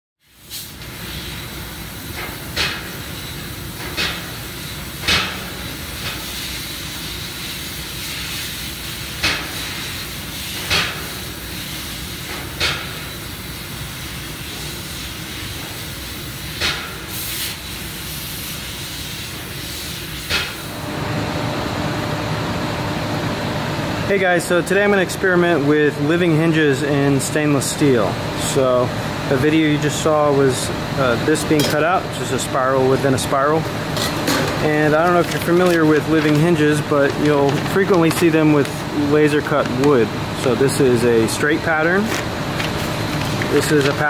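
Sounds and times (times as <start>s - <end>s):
laser cutter hissing: 0.2s - 20.8s.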